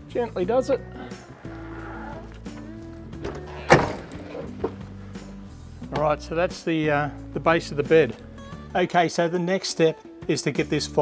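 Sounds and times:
background music: 0.0s - 11.0s
heavy panel clunk: 2.4s - 4.9s.

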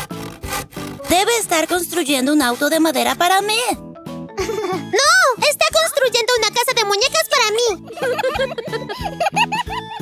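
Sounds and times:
hand saw cutting wood: 0.0s - 3.8s
light background music: 0.0s - 10.0s.

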